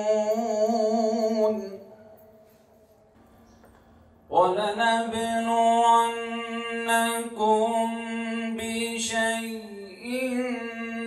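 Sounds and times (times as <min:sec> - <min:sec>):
man reciting in melodic chant: 0:00.0 - 0:02.2, 0:04.3 - 0:11.0.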